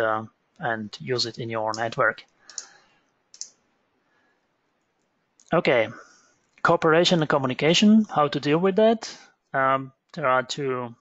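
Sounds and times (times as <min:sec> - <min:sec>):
computer click: 0:01.3 - 0:03.6.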